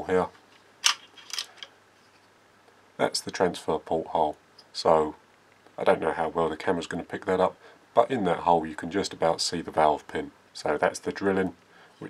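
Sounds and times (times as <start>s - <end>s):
soft rustle: 0.3s - 2.4s.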